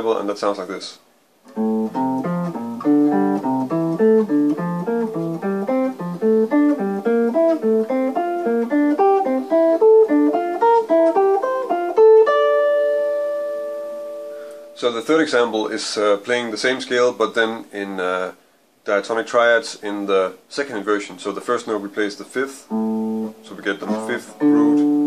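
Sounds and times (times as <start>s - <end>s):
electric jazz guitar plucked notes: 1.5s - 14.8s, 22.7s - 25.0s.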